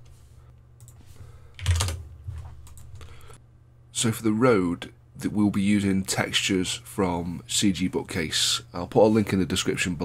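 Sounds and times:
low steady hum: 0.0s - 10.0s
computer keyboard keystrokes: 1.6s - 2.0s.

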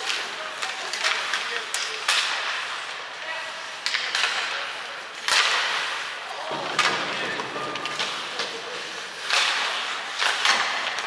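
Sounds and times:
hockey sticks and puck clacking: 0.0s - 11.0s.

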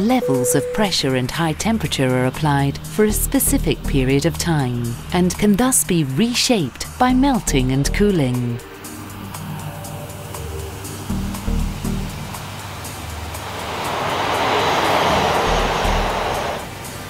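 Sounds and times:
music with low sustained notes: 0.0s - 17.0s
passing jet airliner whoosh: 11.7s - 17.0s.

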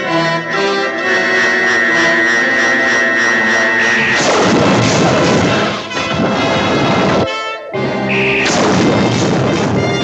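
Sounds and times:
pulsing electronic spaceship drone: 0.0s - 7.2s.

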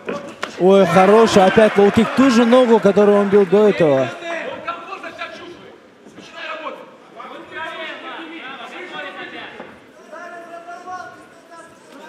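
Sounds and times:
men shouting instructions: 0.6s - 5.5s
commentary: 0.6s - 5.8s.

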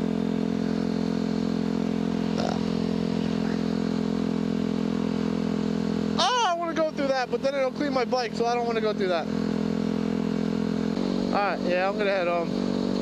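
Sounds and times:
motorcycle engine cruising: 0.0s - 13.0s.

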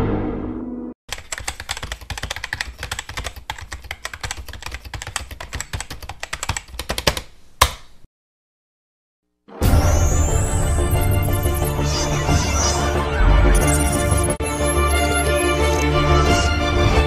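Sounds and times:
computer keyboard typing: 1.1s - 7.3s.

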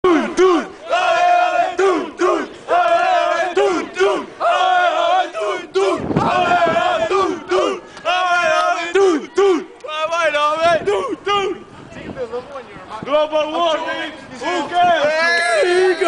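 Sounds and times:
group of voices chanting: 0.0s - 9.8s.

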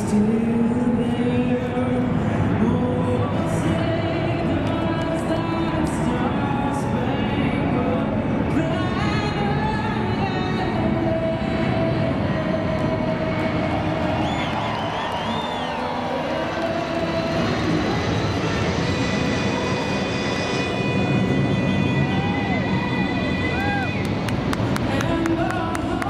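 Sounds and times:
jet plane rumbling overhead: 0.0s - 26.0s
rising and falling whistles: 14.0s - 16.1s.

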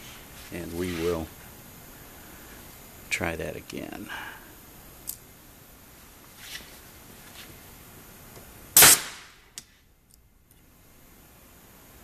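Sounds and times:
pneumatic stamp bang: 8.8s - 9.4s.

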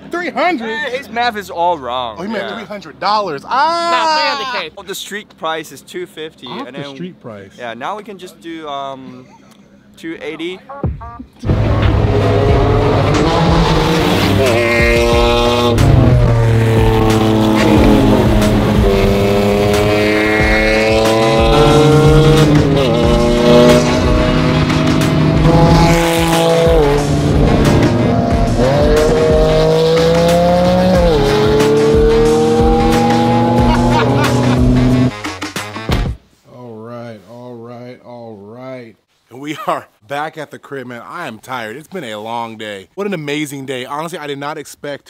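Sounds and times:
car engine accelerating: 11.4s - 35.2s.

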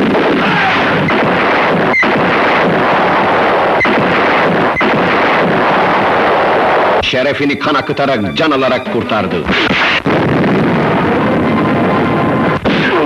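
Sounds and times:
sharp cracks: 0.0s - 8.1s, 9.1s - 11.4s, 12.0s - 13.0s
gunfire and explosions: 0.0s - 13.0s.

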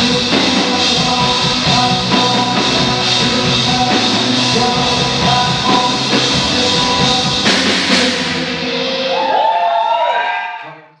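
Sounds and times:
rock band chord ringing out: 0.0s - 9.3s.

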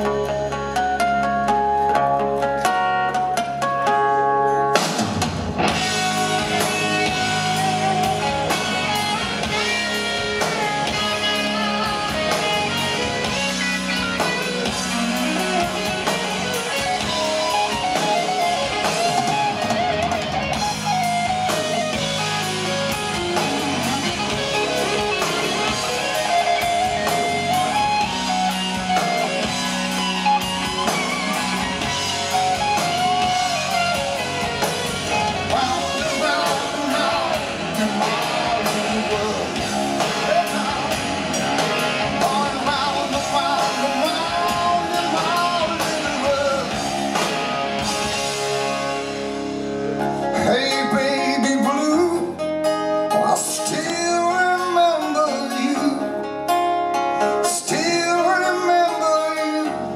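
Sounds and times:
bass guitar: 0.0s - 59.9s
drum kit: 0.0s - 59.9s
lead electric guitar melody: 0.0s - 59.9s.

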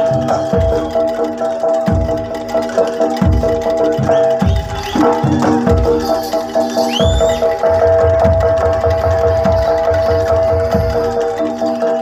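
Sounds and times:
low drum beats: 0.0s - 12.0s
mallet percussion pattern: 0.0s - 12.0s
high gliding squeal: 3.8s - 8.2s.

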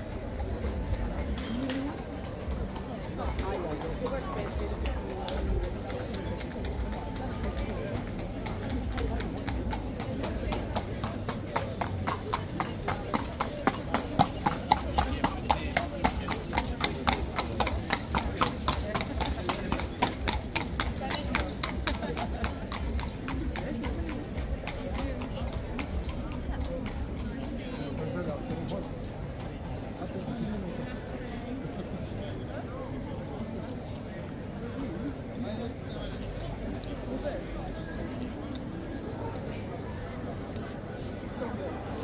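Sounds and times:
crowd chatter: 0.0s - 42.0s
hooves clip-clopping on cobblestones: 0.0s - 42.0s.

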